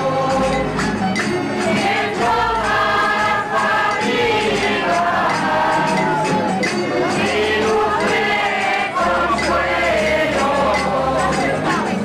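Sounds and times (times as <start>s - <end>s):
group singing folk song: 0.0s - 12.0s.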